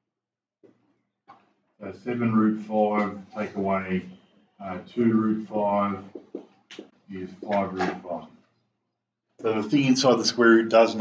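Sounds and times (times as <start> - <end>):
man speaking: 1.8 - 6.4, 7.1 - 8.2, 9.4 - 11.0.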